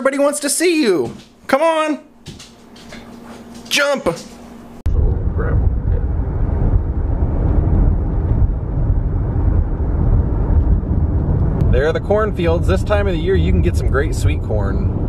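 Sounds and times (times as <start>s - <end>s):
car driving rumble from inside: 4.9s - 15.0s.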